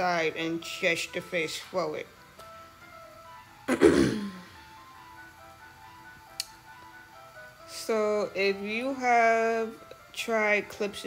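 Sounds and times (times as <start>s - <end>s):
soft background music: 0.0s - 11.0s
person clearing throat: 3.7s - 4.6s.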